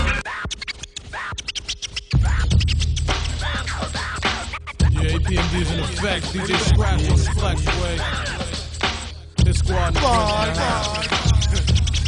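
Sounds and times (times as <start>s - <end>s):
hip-hop beat with bass and drums: 0.0s - 12.0s
turntable scratching: 0.0s - 12.0s.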